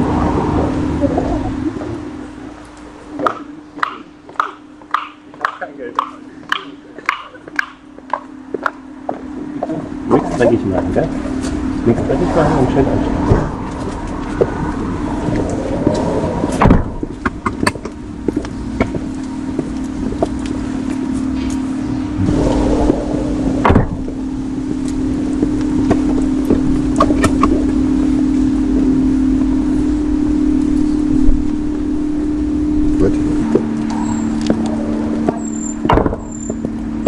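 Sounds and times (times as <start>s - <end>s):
car hum: 0.0s - 37.0s
loud knocks: 16.6s - 17.8s, 23.6s - 24.2s, 35.2s - 36.3s.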